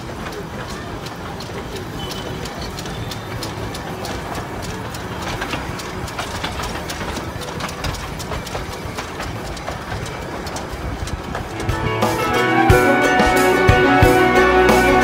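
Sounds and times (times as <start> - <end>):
steam locomotive rumble: 0.0 - 15.0
wheels clattering and rattling: 0.0 - 15.0.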